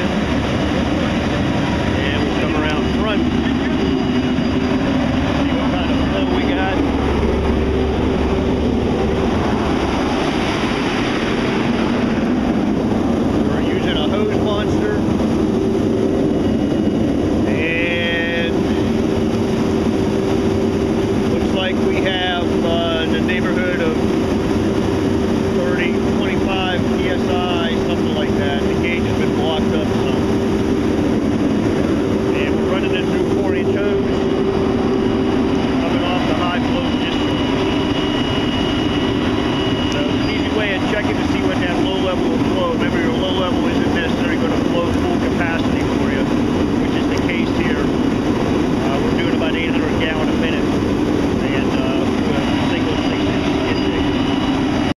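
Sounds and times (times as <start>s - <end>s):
diesel engine running steadily: 0.0s - 54.9s
water rushing from hose: 9.2s - 14.8s.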